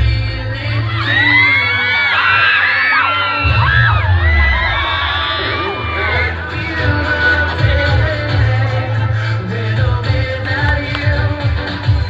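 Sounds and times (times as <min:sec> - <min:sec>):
crowd screaming and cheering: 0:00.0 - 0:12.0
dance music with heavy bass: 0:00.0 - 0:12.0.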